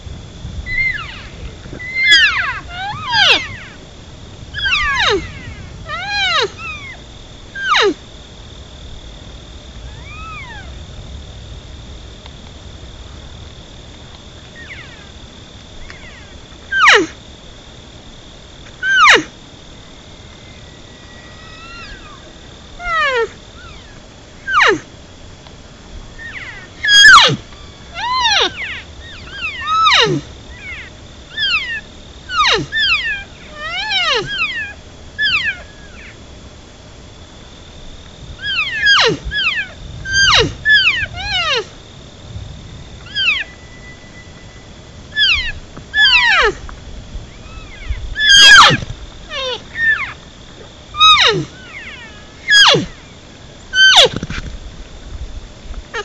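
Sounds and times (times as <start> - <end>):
elk mews and chirps: 0.7 - 3.8, 4.6 - 7.0, 7.6 - 8.0, 9.9 - 10.8, 14.6 - 15.1, 15.8 - 17.1, 18.8 - 19.3, 20.4 - 24.8, 26.2 - 36.2, 38.4 - 41.7, 43.0 - 44.5, 45.1 - 46.6, 47.3 - 50.2, 51.0 - 54.2.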